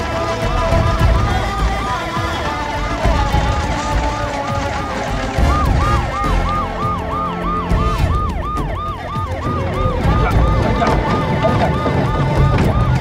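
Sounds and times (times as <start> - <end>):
ambulance siren yelping: 0.0 - 13.0.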